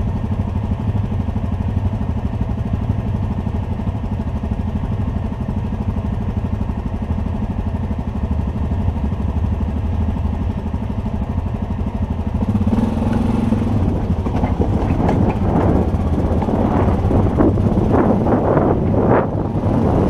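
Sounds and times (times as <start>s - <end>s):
quad engine running low: 0.0s - 20.0s.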